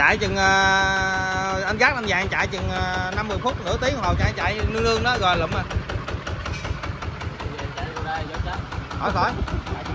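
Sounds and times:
diesel engine idling: 0:00.0 - 0:09.9.

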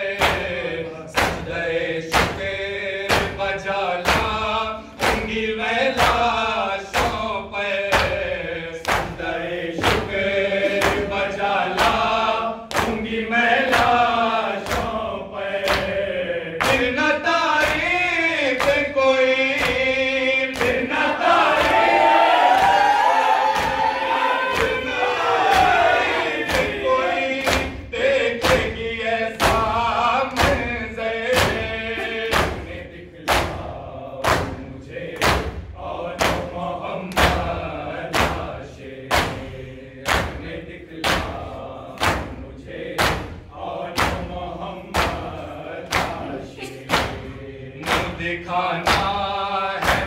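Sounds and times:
men chanting in unison: 0:00.0 - 0:50.0
hands slapping chests: 0:00.2 - 0:00.6, 0:01.2 - 0:02.5, 0:04.0 - 0:04.4, 0:05.0 - 0:05.4, 0:08.8 - 0:11.2, 0:12.7 - 0:13.1, 0:14.6 - 0:15.0, 0:15.6 - 0:16.0, 0:17.6 - 0:17.9, 0:18.5 - 0:18.9, 0:20.5 - 0:20.9, 0:21.5 - 0:27.8, 0:29.4 - 0:30.7, 0:31.4 - 0:33.6, 0:34.2 - 0:34.6, 0:35.2 - 0:35.6, 0:39.1 - 0:41.4, 0:42.0 - 0:42.4, 0:43.0 - 0:43.4, 0:44.0 - 0:44.2, 0:44.9 - 0:48.2, 0:48.8 - 0:49.2, 0:49.8 - 0:50.0.

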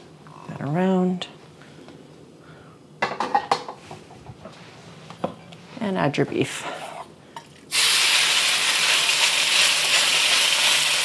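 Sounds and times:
beef sizzling in a wok: 0:07.7 - 0:11.0.

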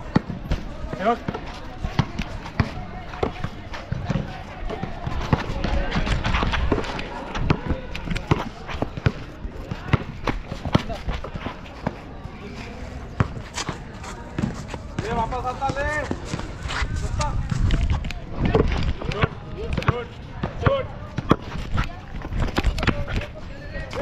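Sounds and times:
players' voices: 0:00.0 - 0:24.0
running footsteps: 0:00.5 - 0:24.0.

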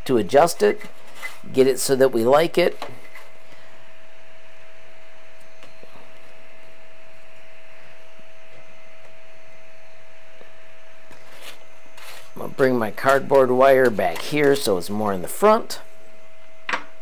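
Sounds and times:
fan hum: 0:00.0 - 0:17.0.

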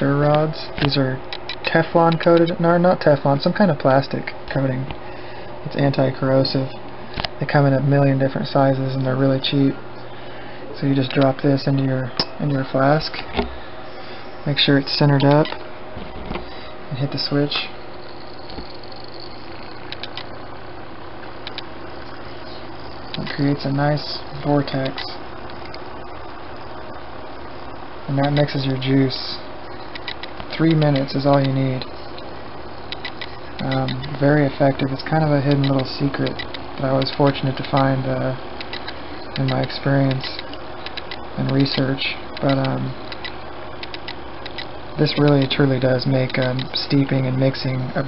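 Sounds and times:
fan humming: 0:00.0 - 0:48.0.

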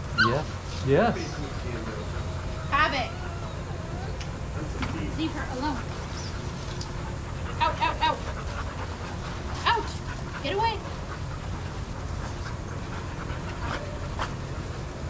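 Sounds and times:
dogs yipping and whining: 0:00.0 - 0:15.0.

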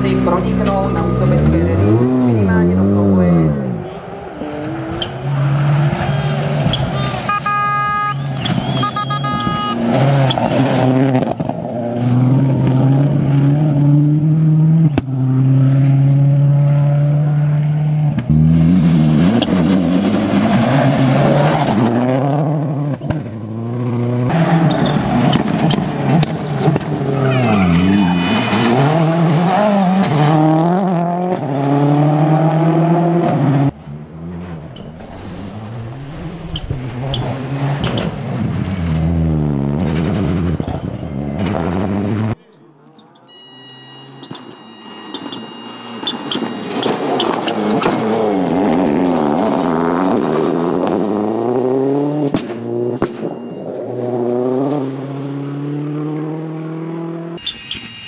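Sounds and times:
rally car engine revving past: 0:09.8 - 0:42.4, 0:46.8 - 0:57.4.

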